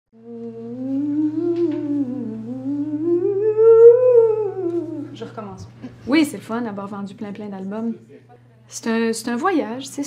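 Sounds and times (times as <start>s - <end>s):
woman humming: 0.1s - 5.4s
steady low hum: 0.2s - 10.0s.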